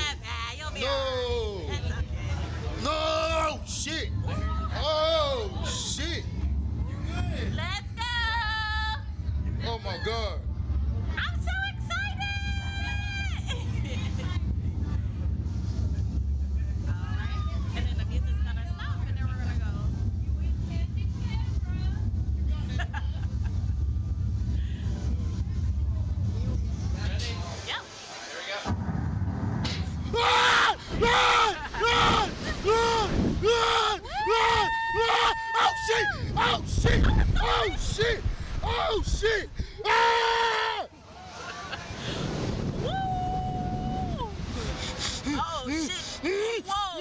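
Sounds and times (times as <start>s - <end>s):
steady low hum: 0.0s - 27.7s, 28.7s - 40.1s
riders yelling and screaming: 30.0s - 41.8s.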